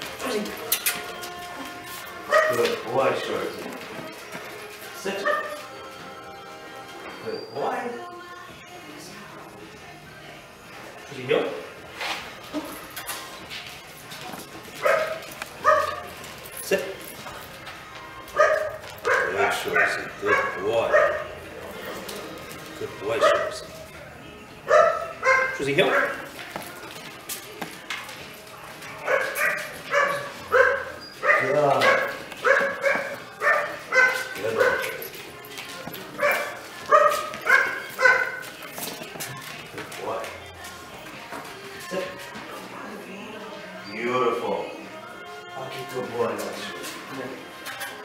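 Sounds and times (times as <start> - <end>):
young dog barking: 14.8 - 16.0, 18.4 - 21.3, 24.7 - 26.2, 29.1 - 35.0, 36.2 - 38.4
dog whining: 29.1 - 35.0.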